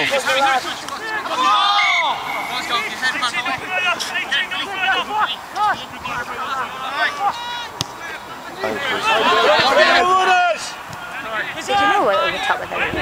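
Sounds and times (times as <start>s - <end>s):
men talking and calling out: 0.0s - 13.0s.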